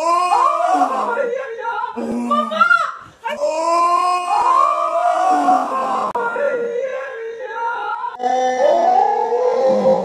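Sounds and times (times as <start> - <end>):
loud held cry: 0.0 - 10.0.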